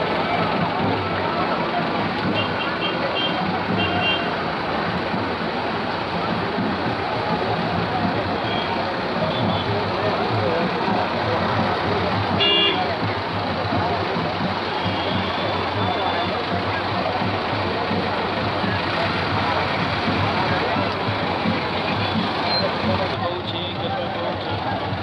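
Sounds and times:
crowd chatter: 0.0s - 25.0s
vehicle engine running: 0.0s - 25.0s.

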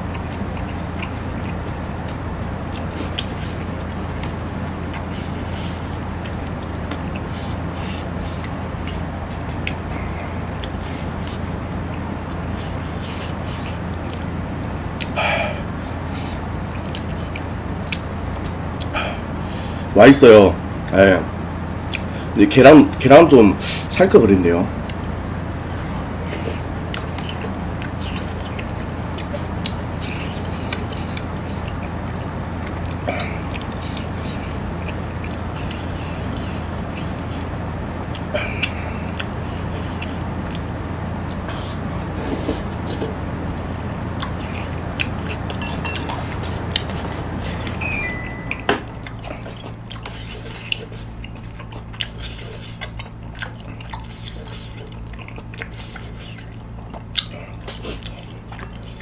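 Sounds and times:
person chewing food: 0.0s - 19.8s, 21.7s - 22.3s, 24.8s - 25.2s, 25.8s - 59.0s
steady low hum: 0.0s - 59.0s.

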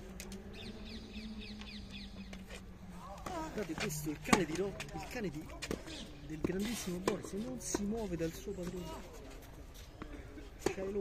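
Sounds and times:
bird chirping: 0.5s - 2.5s.

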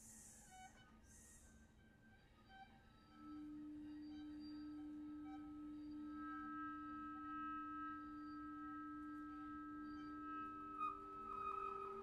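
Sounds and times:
chamber music strings and flute: 2.5s - 12.0s.

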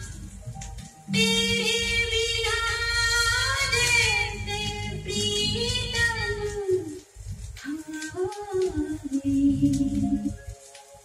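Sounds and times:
woman singing with instruments: 1.1s - 10.5s.

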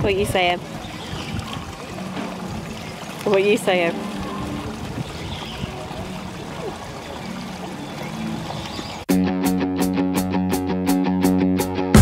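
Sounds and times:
guitar music with steady beat: 9.1s - 12.0s.

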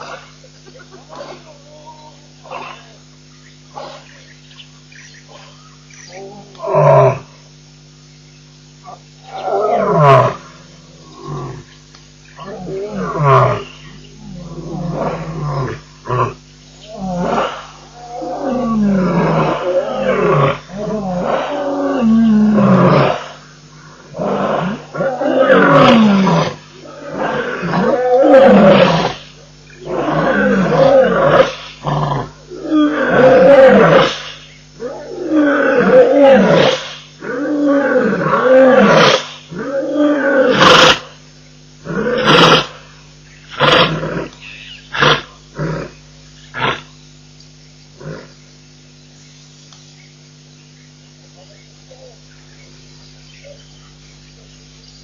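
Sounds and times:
lion roaring: 9.2s - 11.7s, 12.4s - 41.0s, 41.8s - 42.9s.

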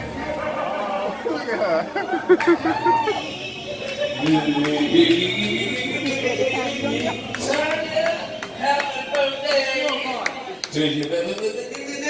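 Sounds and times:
indistinct chatter: 0.0s - 12.0s.

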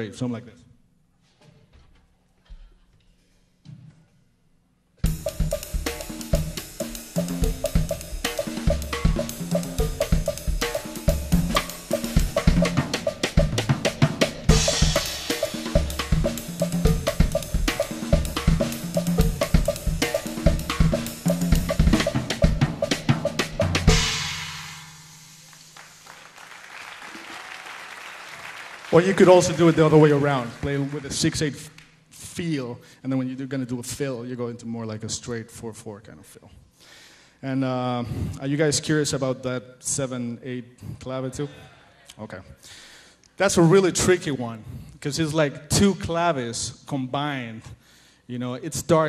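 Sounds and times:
drum kit playing: 5.0s - 26.6s, 28.8s - 31.6s
cymbal crash ringing: 14.5s - 22.2s, 23.7s - 26.1s.

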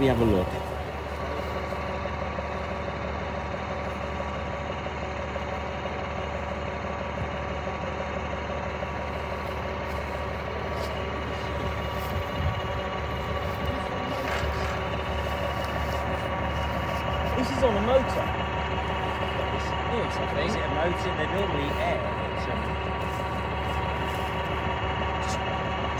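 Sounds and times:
heavy vehicle engine idling: 0.0s - 25.9s.

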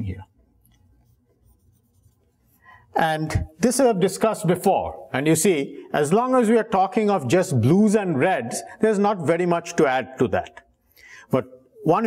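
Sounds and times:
marker rubbing on whiteboard: 0.7s - 2.6s.

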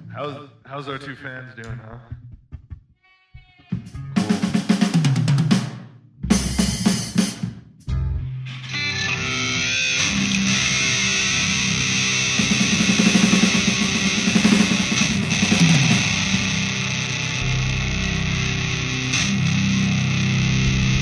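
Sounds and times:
bass guitar low end: 6.0s - 6.9s, 7.5s - 21.0s
heavy metal band playing live: 8.7s - 21.0s.

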